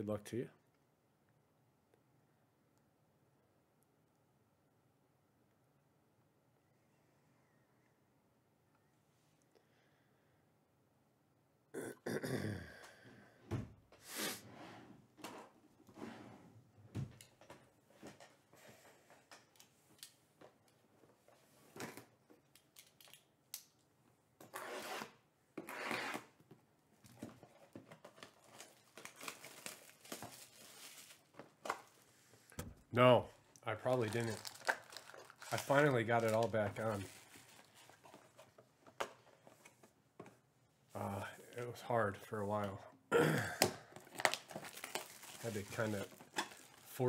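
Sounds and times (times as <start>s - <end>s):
person clearing throat: 11.7s - 13.0s, 43.1s - 43.9s.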